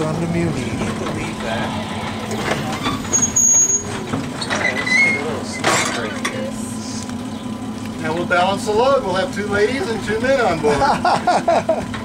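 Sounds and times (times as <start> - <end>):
wheel clacks: 0.0 - 7.2
streetcar hum and rumble: 0.0 - 12.0
high squeaks: 1.4 - 6.1.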